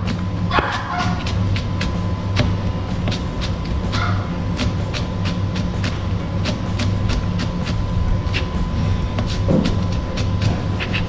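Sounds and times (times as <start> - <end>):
steady low hum: 0.0 - 11.0
knife chopping on plastic board: 9.2 - 11.0.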